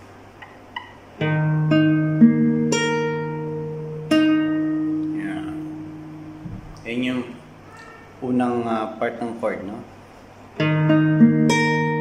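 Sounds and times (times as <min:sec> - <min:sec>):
classical guitar notes plucked: 0:00.4 - 0:07.5, 0:10.6 - 0:12.0.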